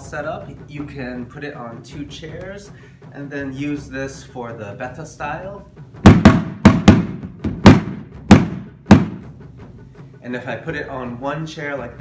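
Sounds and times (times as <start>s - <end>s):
sticks striking a drum: 6.0s - 9.3s.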